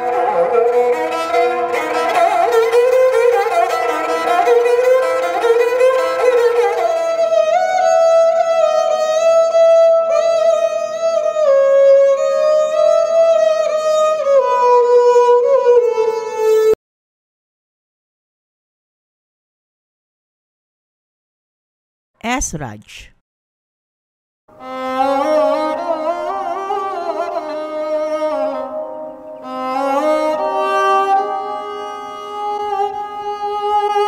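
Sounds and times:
bowed fiddle melody: 0.0s - 16.8s, 24.6s - 34.0s.

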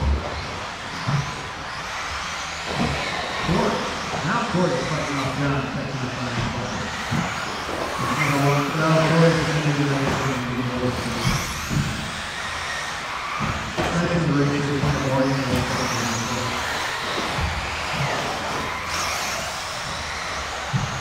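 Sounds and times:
rc car motors whining: 0.0s - 21.0s
person talking: 8.0s - 11.3s, 13.9s - 16.7s.

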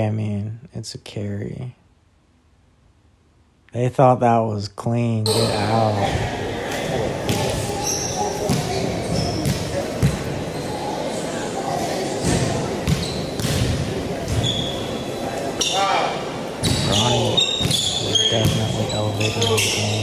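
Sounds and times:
shoe squeaks: 7.6s - 9.7s, 10.4s - 11.0s, 12.9s - 13.5s, 14.3s - 16.0s, 16.6s - 20.0s.

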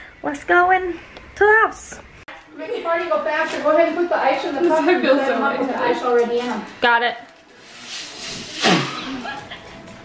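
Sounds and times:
breath blowing into balloon: 7.9s - 9.3s.

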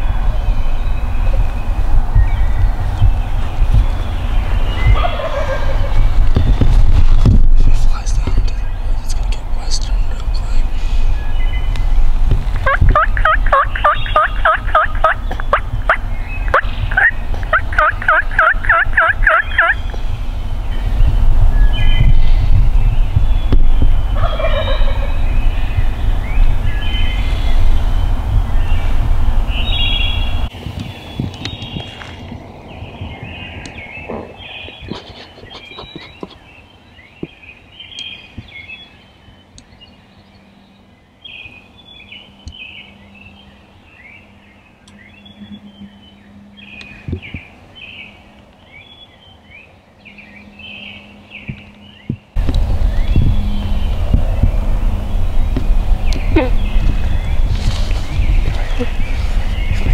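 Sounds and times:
loud low rumble: 0.0s - 30.5s, 44.1s - 48.1s, 50.1s - 59.9s
other birds calling: 0.0s - 59.9s
turkey gobbling: 4.9s - 6.0s, 12.6s - 19.8s, 24.2s - 25.2s.

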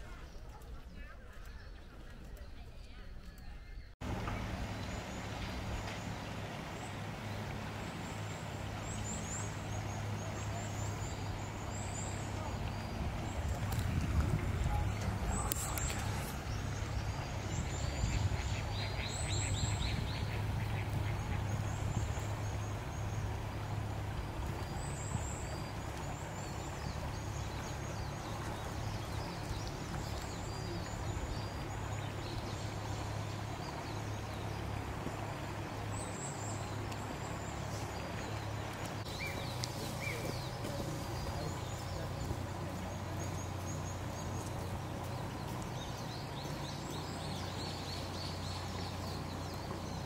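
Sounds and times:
birds chirping: 0.0s - 50.0s
low engine hum: 1.8s - 50.0s.

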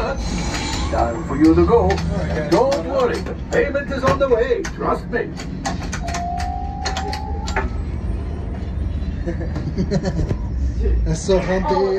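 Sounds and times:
low ambient ship rumble: 0.0s - 11.9s.

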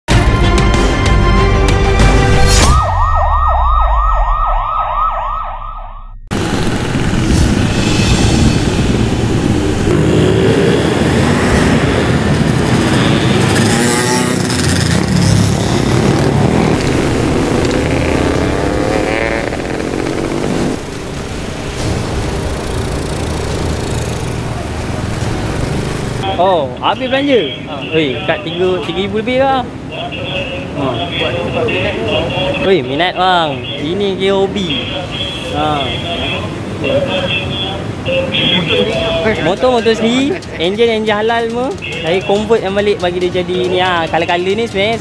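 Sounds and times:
siren yelping: 2.6s - 6.3s
steady traffic noise: 6.0s - 45.0s
motorcycles revving past: 6.4s - 26.2s.

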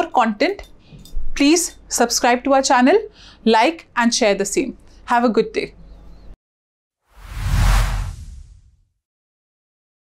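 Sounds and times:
whoosh with low rumble: 7.2s - 8.8s.

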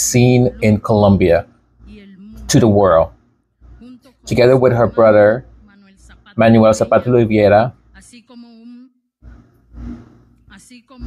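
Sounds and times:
person speaking: 0.0s - 3.1s, 3.7s - 8.9s.

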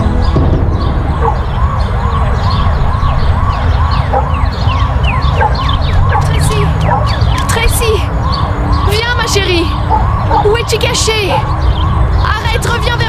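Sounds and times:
low rumble: 0.0s - 10.6s
higher siren sweeping downward: 0.0s - 13.0s
siren yelping: 0.0s - 13.0s.

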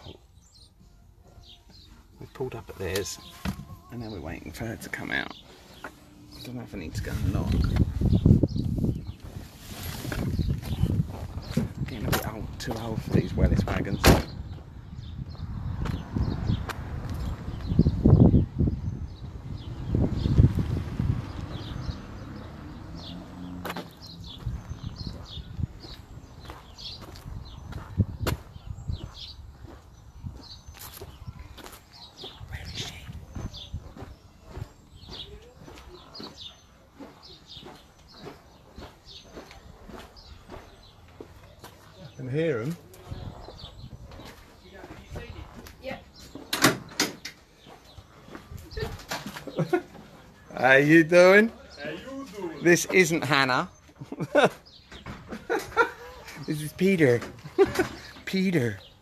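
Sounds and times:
birds chirping: 0.0s - 59.0s
car door clunk: 14.0s - 14.4s.

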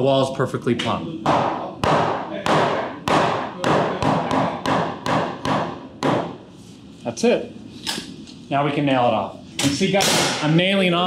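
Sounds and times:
hammer striking wood: 1.2s - 6.4s.

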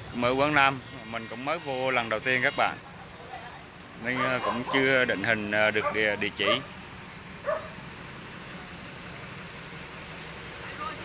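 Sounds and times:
outdoor background noise: 0.0s - 11.0s
dog barking: 4.2s - 5.0s, 5.8s - 6.7s, 7.4s - 7.8s.

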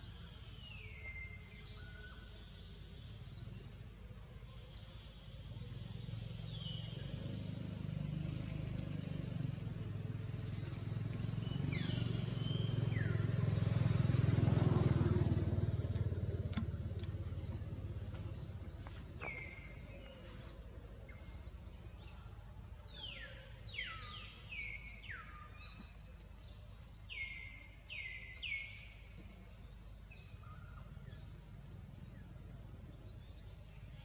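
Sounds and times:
vehicle engine passing: 6.3s - 21.3s.

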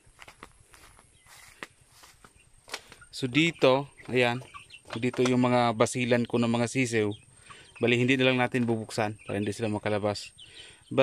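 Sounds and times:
faint footsteps: 0.0s - 5.4s.

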